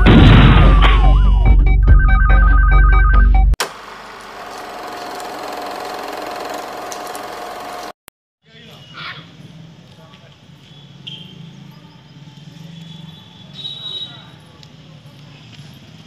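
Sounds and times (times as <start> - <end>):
faint outdoor background noise: 8.4 - 16.0.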